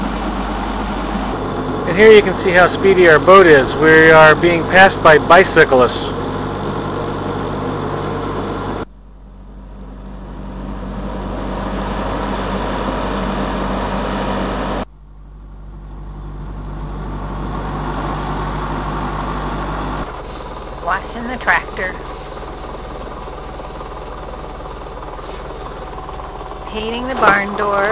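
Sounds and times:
boat engine humming: 0.0s - 27.9s.

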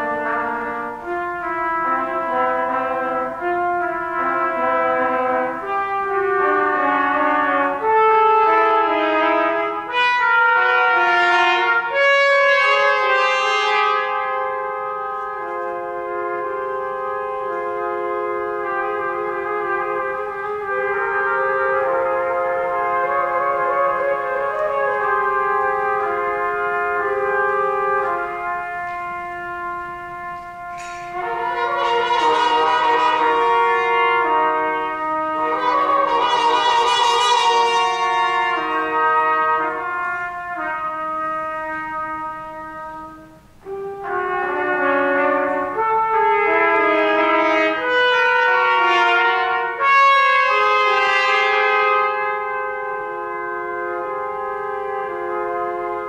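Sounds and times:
trumpets playing: 0.0s - 56.0s.

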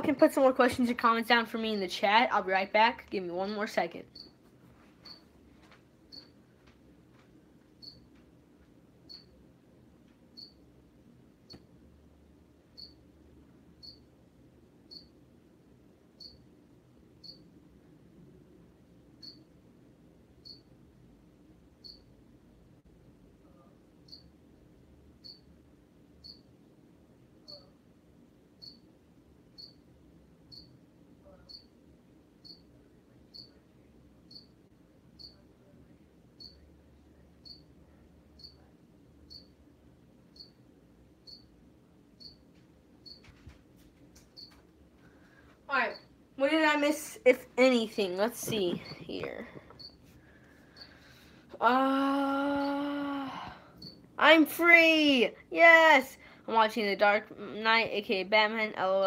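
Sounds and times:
faint low hum: 0.0s - 59.0s
cricket chirping: 7.8s - 8.0s, 10.4s - 10.6s, 12.8s - 13.0s, 14.9s - 15.1s, 16.2s - 16.4s, 17.2s - 17.4s, 20.4s - 20.7s, 21.8s - 22.1s, 24.0s - 24.3s, 25.2s - 25.5s, 26.2s - 26.5s, 28.6s - 28.8s, 29.6s - 29.8s, 30.5s - 30.8s, 31.5s - 31.7s, 32.4s - 32.7s, 33.3s - 33.6s, 34.3s - 34.5s, 37.4s - 37.7s, 38.4s - 38.6s, 39.3s - 39.6s, 40.3s - 40.6s, 41.2s - 41.5s, 42.2s - 42.4s, 43.0s - 43.2s.

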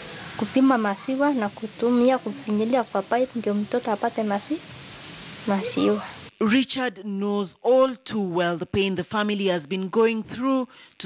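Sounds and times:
steady background hiss: 0.0s - 11.0s
woman speaking: 0.4s - 4.6s, 5.4s - 6.2s.

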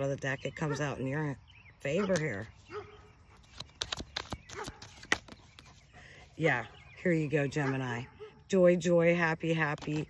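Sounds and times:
cards being shuffled: 3.4s - 5.8s.

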